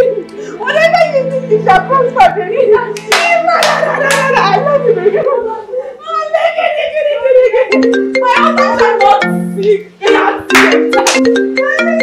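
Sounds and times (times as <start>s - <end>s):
quiet background music: 0.0s - 12.0s
woman clapping hands: 3.0s - 4.4s, 10.5s - 11.4s
woman exclaiming and laughing: 3.6s - 9.2s, 11.5s - 12.0s.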